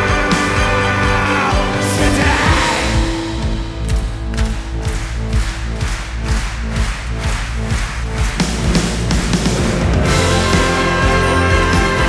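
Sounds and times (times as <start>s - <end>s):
rock band with orchestra: 0.0s - 12.0s.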